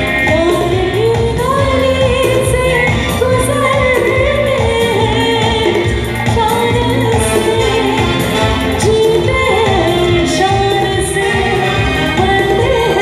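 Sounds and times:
steady drum beat: 0.0 - 13.0
woman singing: 0.0 - 13.0.

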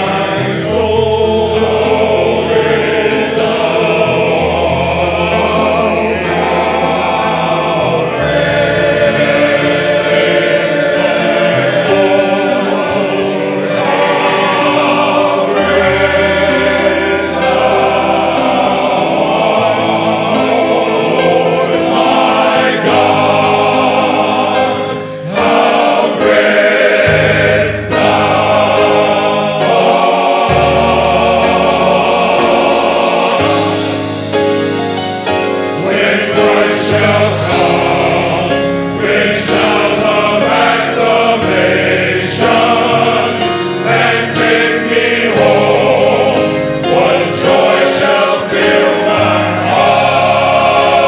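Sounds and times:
men's choir singing in harmony: 0.0 - 51.0.

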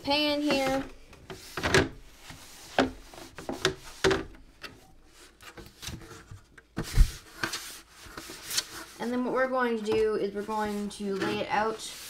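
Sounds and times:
washcloth wiping water: 7.0 - 12.0.

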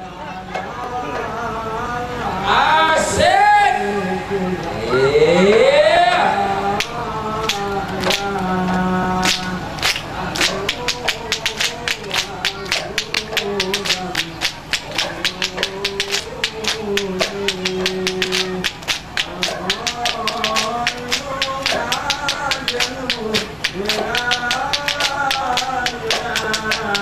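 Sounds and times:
devotional singing: 0.0 - 27.0
hand drums beating fast: 10.3 - 27.0.

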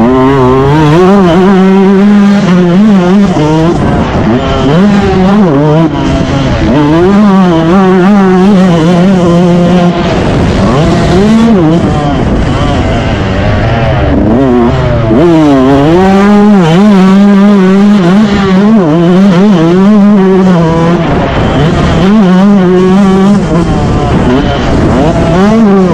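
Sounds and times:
motocross bike engine revving: 0.0 - 25.9
wind and track noise: 0.0 - 25.9.

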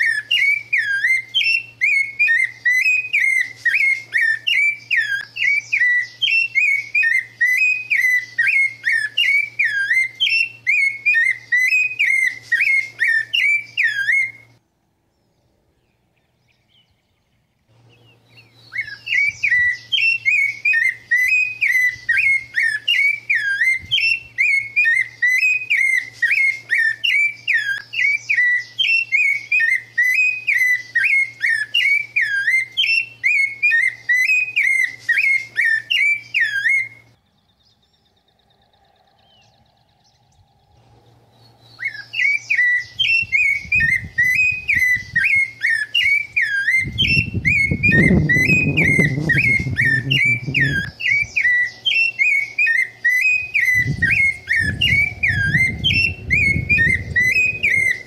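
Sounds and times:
songbird singing whistled notes: 0.0 - 58.0
low rumble: 53.8 - 58.0.

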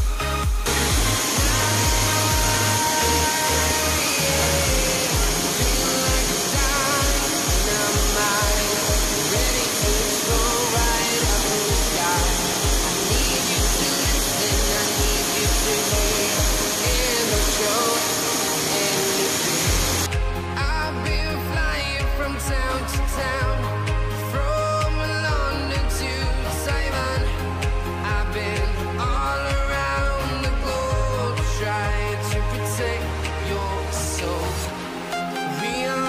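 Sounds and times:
background music with a beat: 0.0 - 36.0
waterfall roaring: 0.7 - 20.1.

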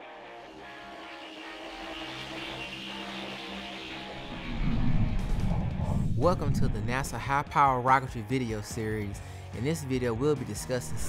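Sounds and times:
sustained layered music tones: 0.0 - 5.8
loud low rumble: 4.0 - 7.4.

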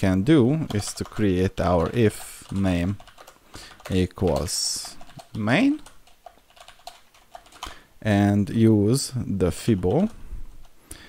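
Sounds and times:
keyboard typing: 0.6 - 7.8.

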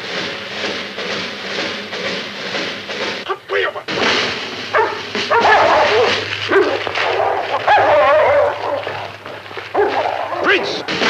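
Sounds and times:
dogs barking: 4.7 - 11.0.

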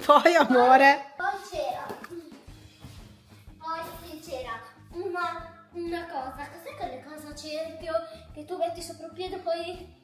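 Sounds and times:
faint background music: 0.0 - 10.0
child's voice: 1.2 - 2.4, 3.6 - 10.0.

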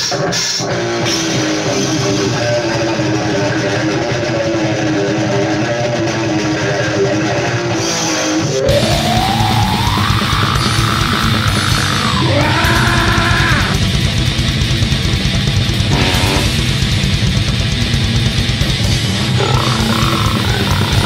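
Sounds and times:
distorted electric guitar riff: 0.0 - 21.0
drums: 0.0 - 21.0
heavy metal band playing: 0.0 - 21.0
rising pitch glide: 15.9 - 16.6.

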